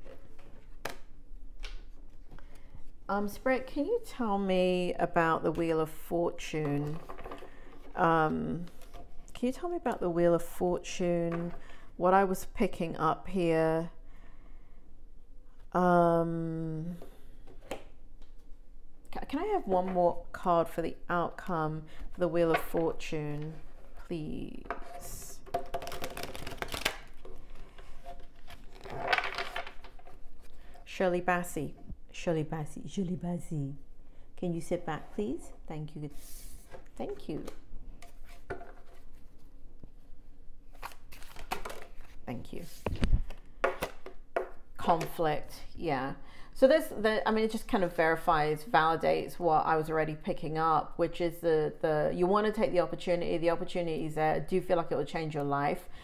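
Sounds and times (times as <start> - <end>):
cards being shuffled by hand: 25.5 - 30.6, 40.7 - 44.1.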